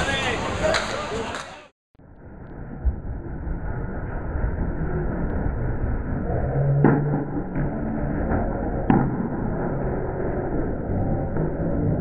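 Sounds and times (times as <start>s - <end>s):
bowling alley background noise: 0.0s - 1.7s.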